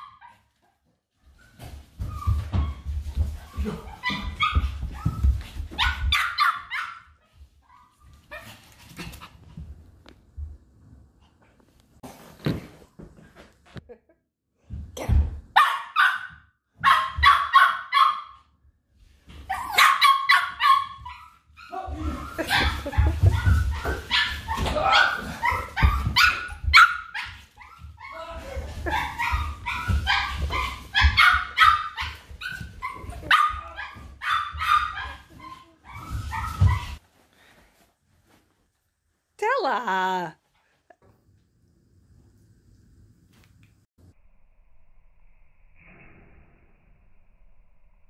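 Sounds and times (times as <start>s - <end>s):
small dog barking: 15.6s - 18.4s, 19.7s - 21.1s
small dogs barking: 15.6s - 18.4s, 19.6s - 21.2s, 28.8s - 35.3s.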